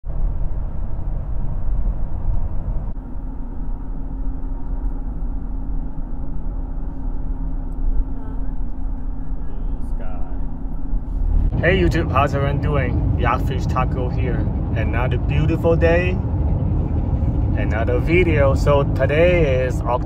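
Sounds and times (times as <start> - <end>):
car road and engine rumble: 0.0 - 20.0
steady low hum: 0.1 - 20.0.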